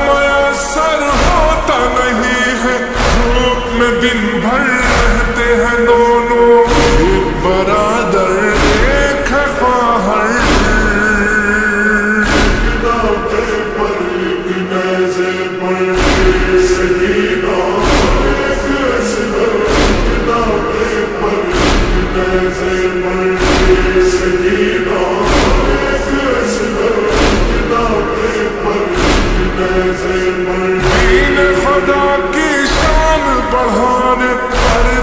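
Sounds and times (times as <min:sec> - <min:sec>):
voices chanting long held notes: 0:00.0 - 0:35.0
deep bass pulse: 0:06.7 - 0:09.8, 0:15.9 - 0:31.7
deep thump: 0:12.2 - 0:13.4, 0:15.9 - 0:18.9, 0:19.6 - 0:26.3, 0:27.0 - 0:30.1.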